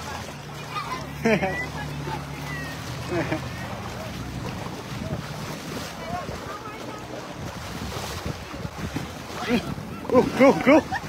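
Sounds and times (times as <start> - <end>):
voices: 0.0 - 7.6, 9.2 - 11.0
rushing floodwater: 0.0 - 11.0
wind buffeting microphone: 2.9 - 11.0.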